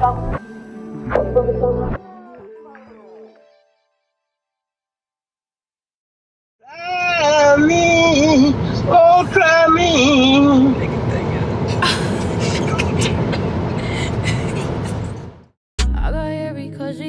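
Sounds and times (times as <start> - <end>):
car road noise: 7.2 - 15.5
woman singing over phone: 16.1 - 17.0.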